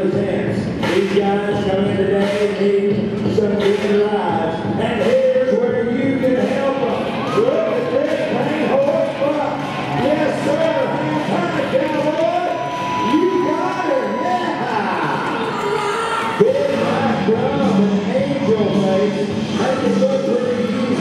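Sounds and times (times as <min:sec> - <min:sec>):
music over arena loudspeakers: 0:00.0 - 0:21.0
crowd cheering and whooping: 0:07.0 - 0:17.2.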